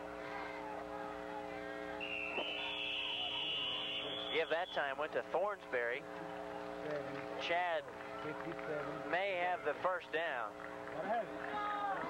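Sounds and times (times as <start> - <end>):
referee's whistle shrill tone: 2.0 - 4.9.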